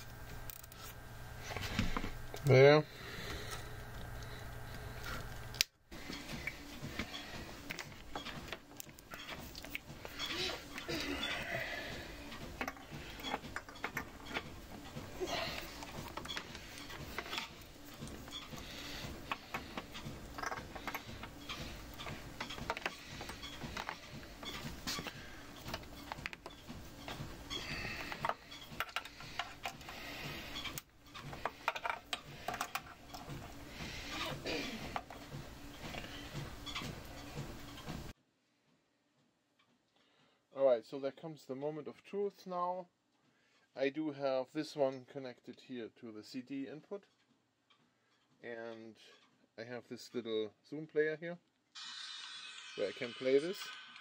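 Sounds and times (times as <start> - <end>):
cables rustling: 0.0 - 38.1.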